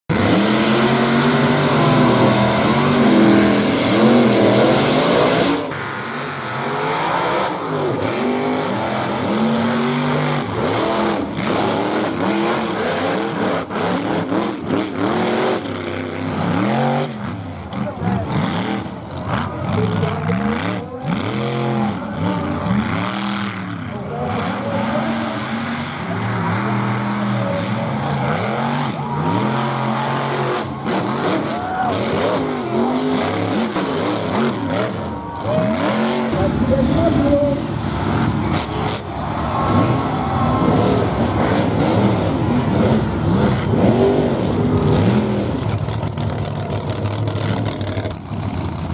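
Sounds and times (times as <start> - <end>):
truck engines revving hard: 0.0 - 48.9
loud rush of noise: 0.1 - 19.6, 23.6 - 48.9.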